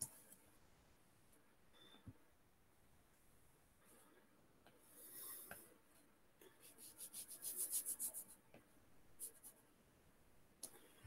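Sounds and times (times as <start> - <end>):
stylus strokes on glass screen: 3.8 - 8.5, 9.2 - 9.7.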